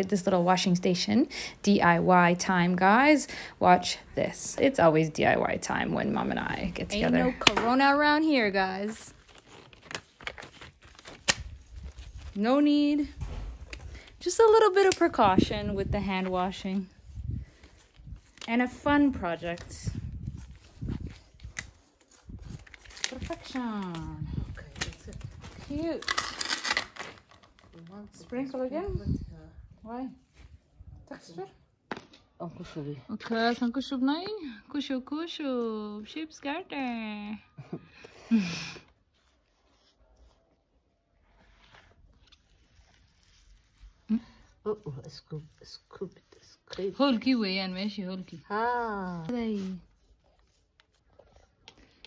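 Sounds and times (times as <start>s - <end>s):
voices speaking: 2.5s - 9.1s.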